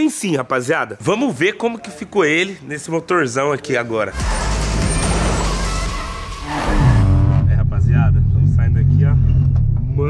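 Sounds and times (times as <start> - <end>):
low steady rumble: 7.4 - 10.0.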